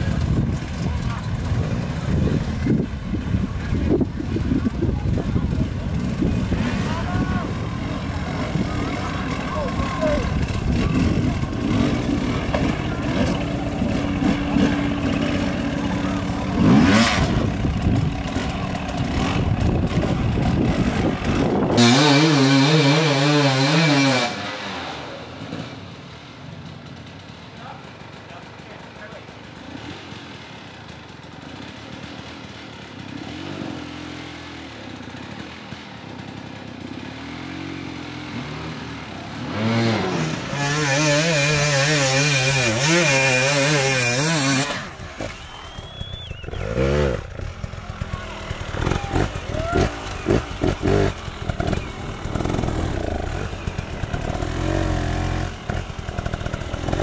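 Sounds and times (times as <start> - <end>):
voices: 0.0 - 23.0, 27.4 - 29.8, 38.8 - 57.0
dirt bike engines revving: 0.0 - 57.0
distant bike revving: 0.0 - 57.0.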